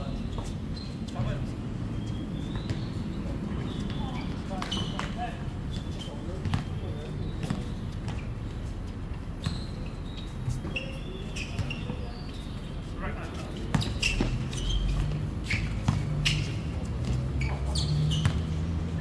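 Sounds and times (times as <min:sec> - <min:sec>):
players' voices: 0:00.0 - 0:08.7, 0:10.4 - 0:14.7
basketball bouncing on court: 0:03.8 - 0:06.8, 0:07.4 - 0:08.3, 0:10.4 - 0:12.0, 0:13.7 - 0:18.6.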